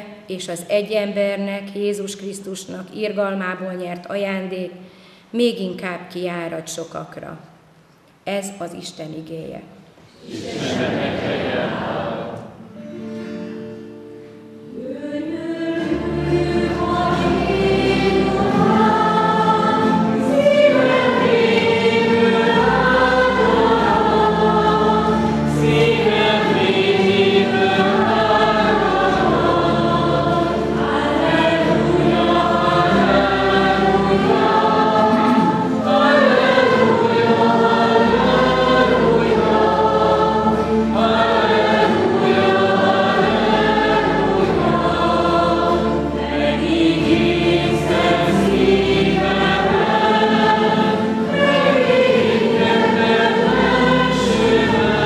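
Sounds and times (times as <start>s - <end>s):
acoustic guitars: 10.0s - 55.0s
group singing in harmony: 10.1s - 12.6s, 14.7s - 55.0s.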